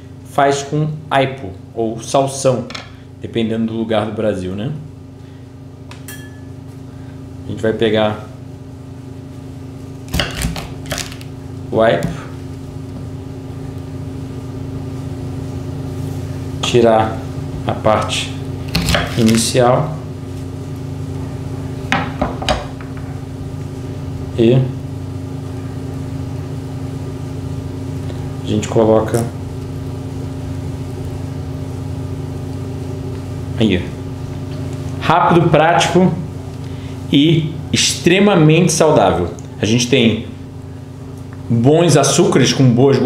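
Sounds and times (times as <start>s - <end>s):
low mechanical hum: 0.0s - 43.0s.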